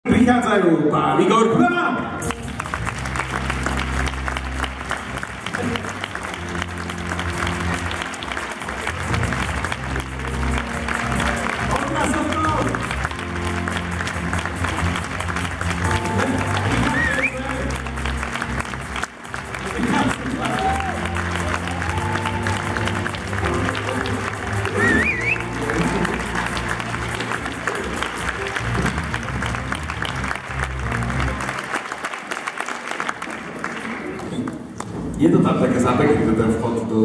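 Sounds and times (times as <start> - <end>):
upbeat music with pulsing bass: 2.2 - 31.5
audience clapping: 2.2 - 35.2
crowd voices: 3.4 - 31.6.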